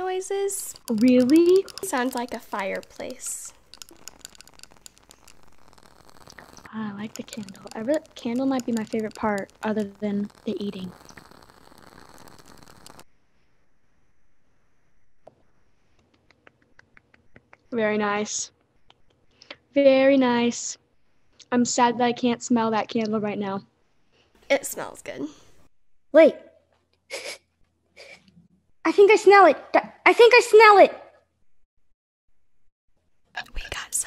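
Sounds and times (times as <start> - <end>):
person speaking: 0.0 - 13.0
candle wick crackling: 0.0 - 13.1.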